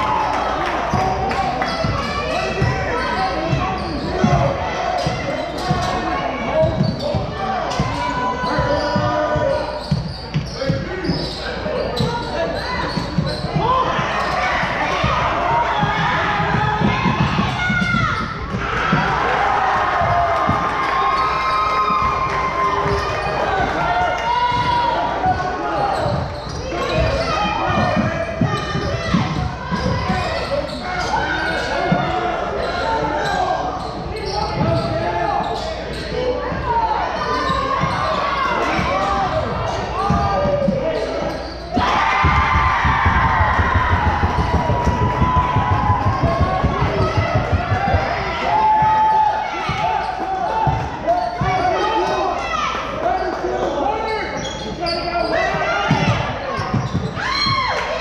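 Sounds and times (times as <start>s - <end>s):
voices echoing in gym: 0.0s - 58.0s
basketball bouncing on hardwood floor: 42.2s - 48.2s.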